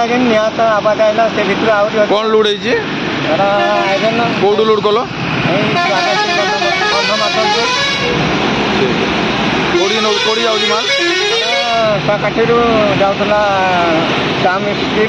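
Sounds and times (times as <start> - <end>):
man talking: 0.0 - 8.1, 8.7 - 15.0
road traffic noise: 0.0 - 15.0.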